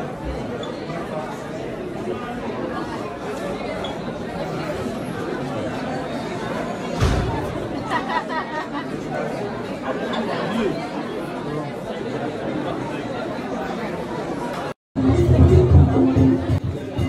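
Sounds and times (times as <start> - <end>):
crowd chatter: 0.0 - 17.0.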